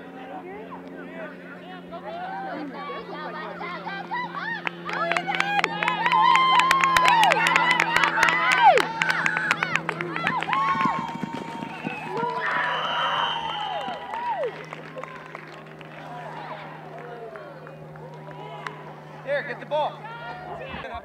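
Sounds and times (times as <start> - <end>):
spectators and children cheering: 2.0 - 21.0.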